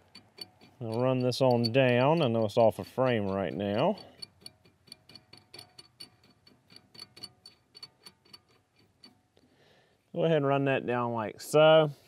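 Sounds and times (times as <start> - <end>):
nut ticking on threaded rod: 0.0 - 9.4.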